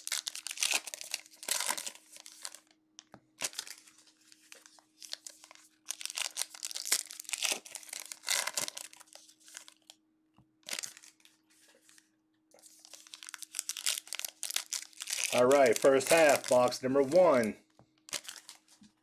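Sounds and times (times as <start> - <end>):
foil wrappers tearing and crinkling: 0.0 - 2.7, 3.4 - 9.9, 10.6 - 12.0, 12.6 - 17.5, 18.1 - 18.9.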